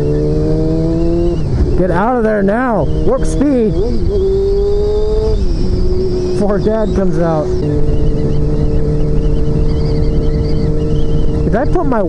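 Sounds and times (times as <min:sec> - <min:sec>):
motorcycle engine running: 0:00.0 - 0:12.0
wind on microphone: 0:00.0 - 0:12.0.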